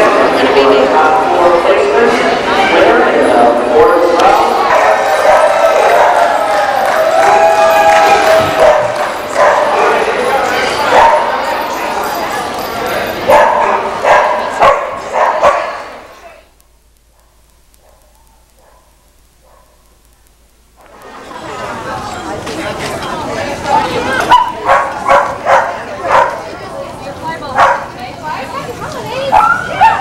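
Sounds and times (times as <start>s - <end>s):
crowd voices: 0.0s - 16.6s, 20.8s - 30.0s
dog barking: 8.6s - 10.0s, 10.8s - 11.4s, 13.3s - 15.9s, 17.1s - 19.9s, 24.3s - 26.4s, 27.6s - 27.9s, 29.3s - 30.0s.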